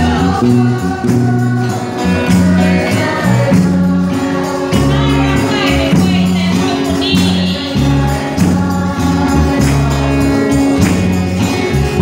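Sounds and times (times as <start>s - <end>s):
amplified accompaniment with bass: 0.0s - 12.0s
group singing gospel song: 0.0s - 12.0s.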